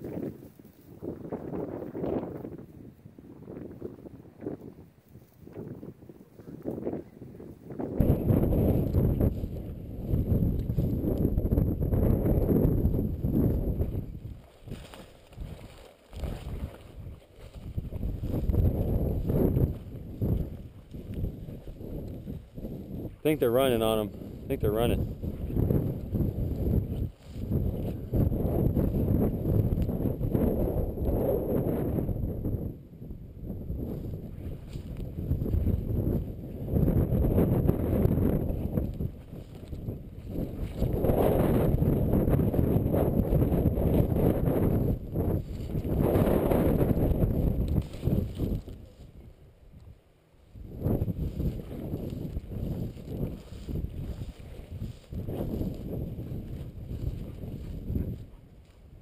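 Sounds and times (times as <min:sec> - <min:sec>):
wind rumbling on microphone: 0:00.0 - 0:59.0
swish of dry grass: 0:14.3 - 0:21.8, 0:45.4 - 0:49.1, 0:50.9 - 0:58.8.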